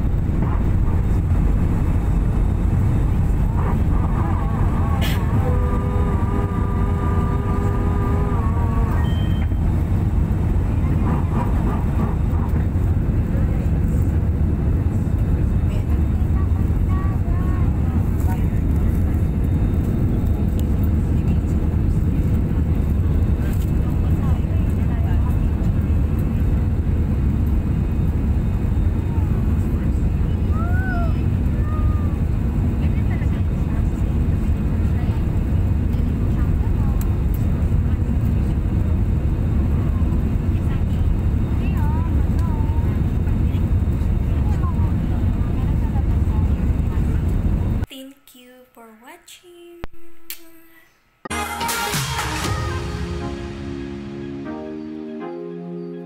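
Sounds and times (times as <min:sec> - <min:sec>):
airflow over fuselage: 0:00.0 - 0:47.9
airliner cabin engine rumble: 0:00.0 - 0:47.9.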